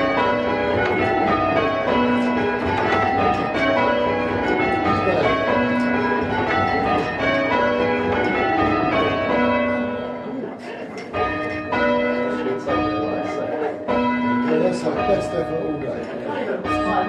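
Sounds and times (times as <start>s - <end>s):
church bells ringing: 0.0s - 17.0s.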